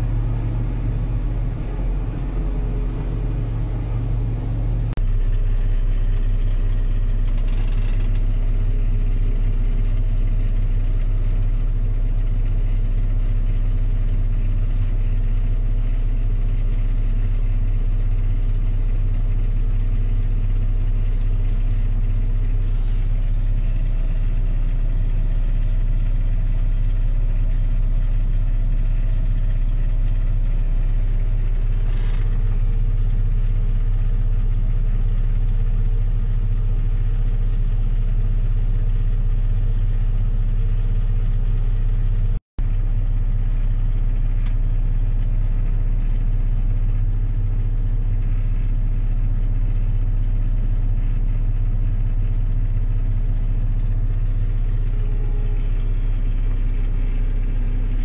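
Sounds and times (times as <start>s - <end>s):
tractor engine droning: 0.0s - 39.4s, 40.0s - 58.0s.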